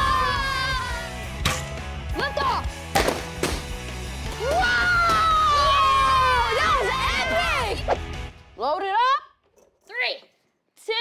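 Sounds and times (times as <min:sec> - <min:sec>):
children yelling and cheering: 0:00.0 - 0:01.2, 0:04.4 - 0:07.9
background music: 0:00.0 - 0:09.7.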